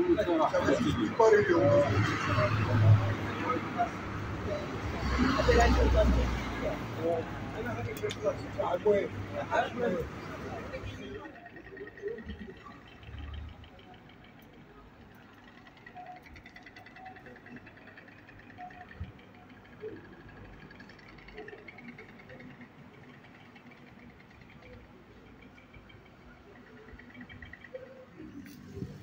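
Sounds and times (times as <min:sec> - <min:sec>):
traffic noise: 0:00.0 - 0:29.0
wind: 0:00.0 - 0:29.0.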